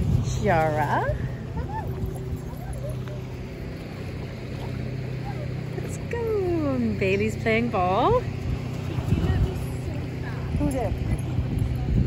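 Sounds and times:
wind noise on microphone: 0.0 - 3.8, 7.8 - 12.0
steady low drone: 0.0 - 12.0.

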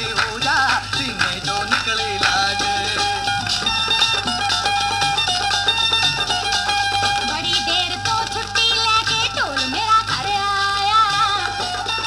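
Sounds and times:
folk record on a turntable: 0.0 - 12.0.

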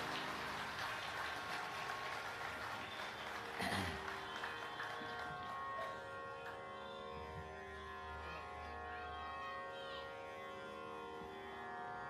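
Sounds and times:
audience applauding: 0.0 - 6.7
tanpura drone: 0.0 - 12.0.

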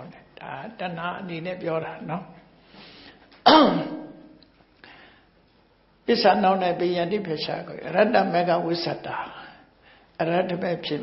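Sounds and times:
man clearing his throat: 3.4 - 4.2.

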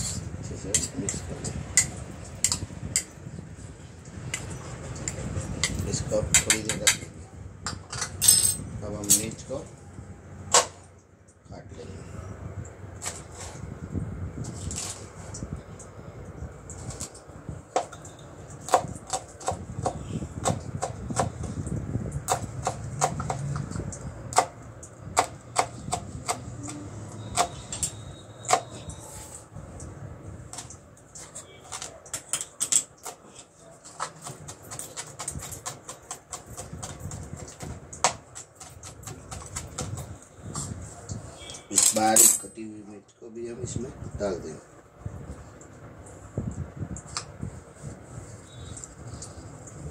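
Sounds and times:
knife chopping on plastic board: 22.2 - 23.7, 24.3 - 26.5.

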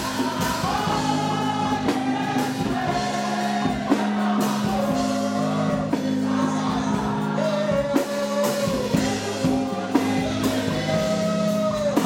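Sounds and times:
congregation and choir singing gospel: 0.0 - 12.0
drum strikes: 0.0 - 12.0.

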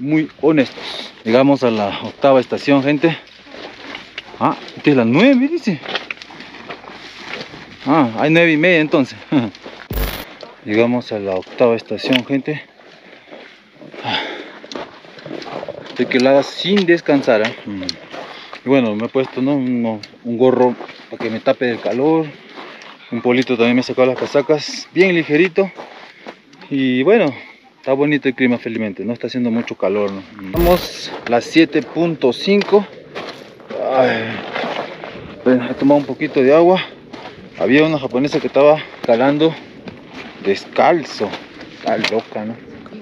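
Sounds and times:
faint background noise: 0.0 - 43.0.

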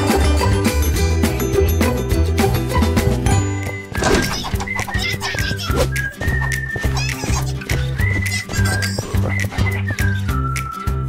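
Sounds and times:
cartoon background music: 0.0 - 11.0
high-pitched cartoon vocal sounds: 4.2 - 5.9, 6.8 - 9.2.

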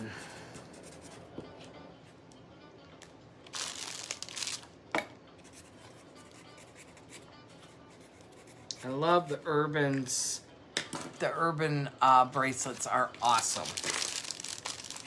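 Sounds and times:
rustling crinkle: 3.5 - 4.7, 12.7 - 15.0.

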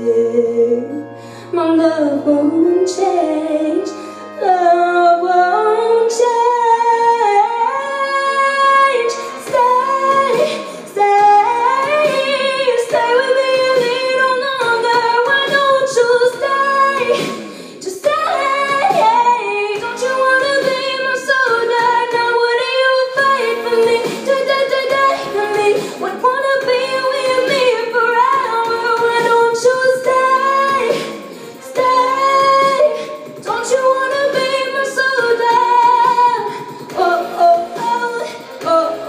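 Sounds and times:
woman singing a pop song: 0.0 - 39.0.

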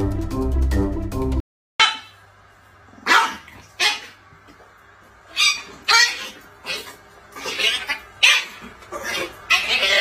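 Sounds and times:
dog and cat play-fighting calls: 2.9 - 4.6, 5.2 - 10.0.

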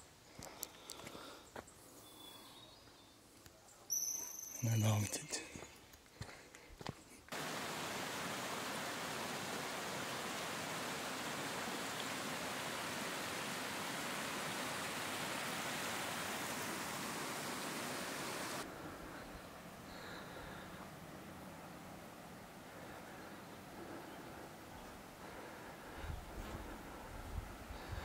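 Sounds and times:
quiet steady hiss: 6.8 - 28.0
creek water running over rocks: 7.3 - 18.7.

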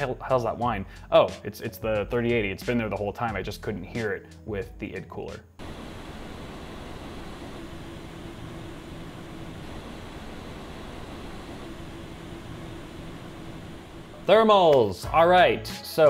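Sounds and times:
faint steady tone: 5.6 - 14.2
cooling fans whooshing: 5.6 - 16.0.

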